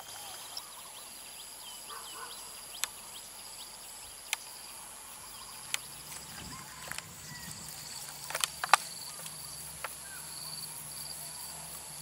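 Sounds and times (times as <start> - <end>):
high-pitched insect chorus: 0.0 - 12.0
sharp clicks: 7.9 - 10.0.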